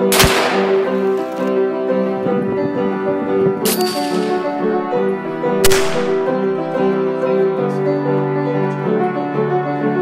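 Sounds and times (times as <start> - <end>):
gunshots with echo: 0.0 - 1.0, 5.6 - 6.4
piano music: 0.0 - 10.0.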